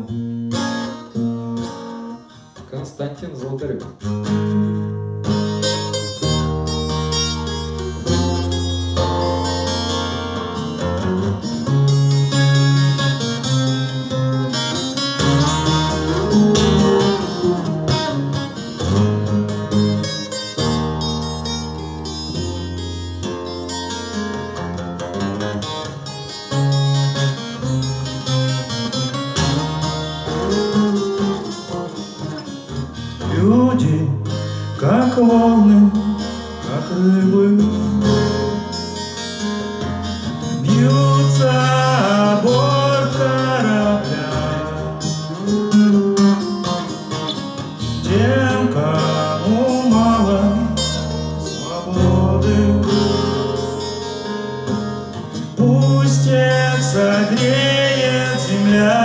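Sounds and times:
acoustic guitar strumming chords: 0.0 - 59.0.

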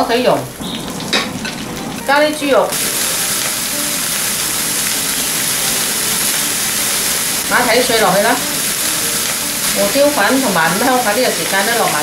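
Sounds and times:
meat sizzling in hot oil: 0.1 - 12.0.

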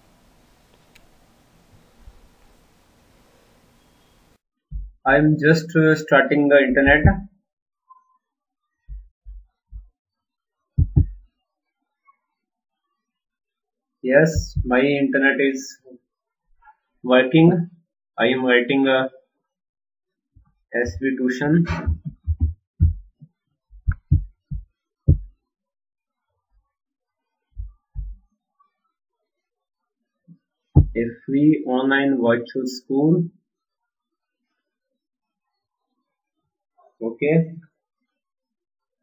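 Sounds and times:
low dull thumps: 4.7 - 5.4, 6.7 - 7.3, 10.8 - 11.2, 14.2 - 14.7, 21.6 - 23.2, 23.8 - 25.3, 27.6 - 28.2, 30.8 - 31.0.

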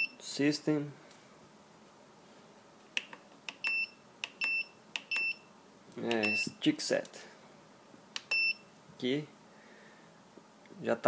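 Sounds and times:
short high-pitched beeps: 0.0 - 0.2, 3.6 - 5.5, 6.2 - 6.6, 8.3 - 8.7.

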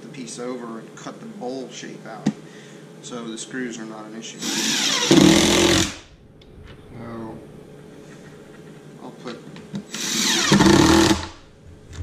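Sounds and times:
cordless drill driving screw: 4.4 - 6.0, 9.9 - 11.4.

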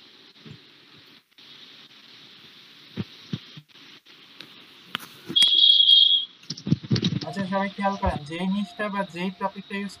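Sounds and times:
high-pitched electronic tone: 7.2 - 10.0.

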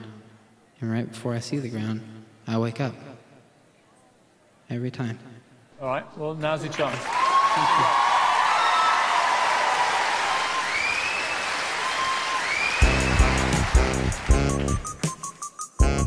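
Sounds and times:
audience cheering and applauding: 6.7 - 15.4
whistles: 10.3 - 13.6, 14.5 - 15.8
rap backing track: 12.8 - 16.0.

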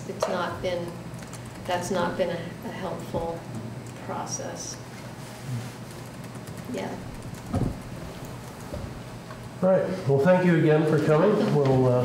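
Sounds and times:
short low thump: 7.5 - 7.8.

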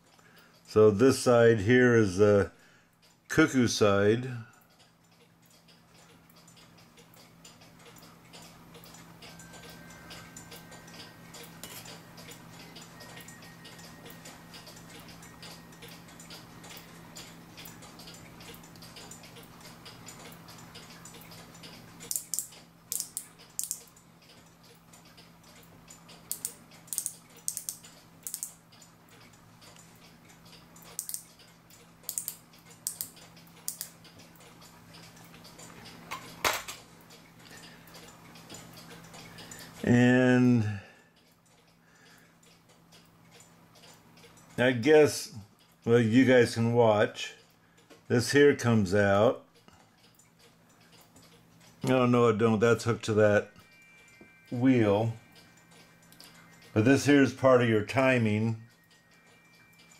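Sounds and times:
low steady hum: 0.0 - 59.9
sharp clicks: 14.2 - 29.9, 30.5 - 35.6.

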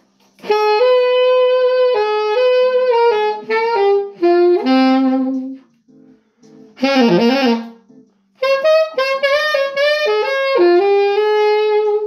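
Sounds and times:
saxophone playing blues: 0.4 - 12.0.

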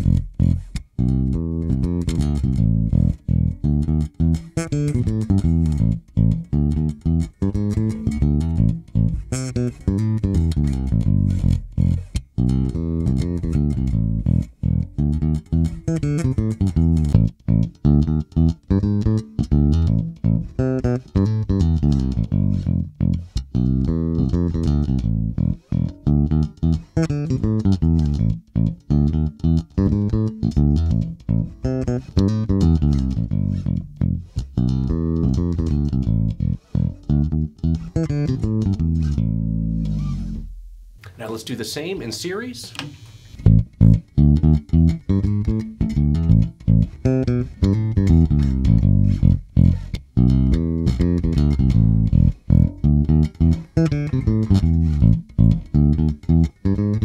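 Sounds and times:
electric bass plucked notes: 0.0 - 42.5, 43.3 - 57.0.

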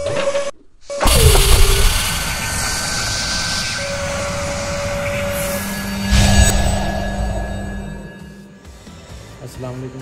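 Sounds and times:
noisy whoosh: 1.0 - 8.5
held mid tone: 1.0 - 8.7.

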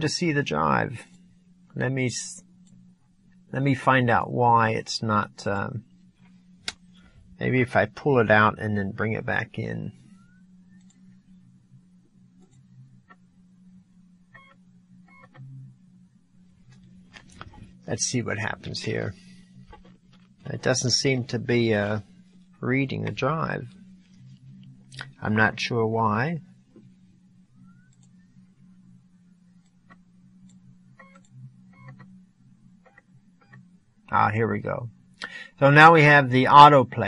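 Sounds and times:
dvd drive buzzing: 0.0 - 37.0
faint steady hum: 0.0 - 37.0.

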